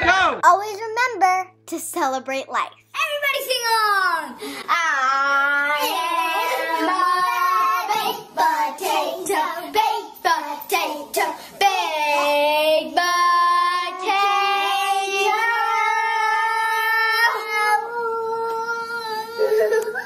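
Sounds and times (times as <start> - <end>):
child singing: 4.6 - 20.0.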